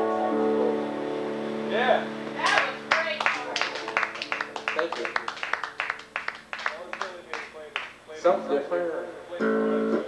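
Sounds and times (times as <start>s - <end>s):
keyboard chord ringing: 0.0s - 5.2s
hand clapping: 2.3s - 8.0s
people cheering: 2.4s - 7.6s.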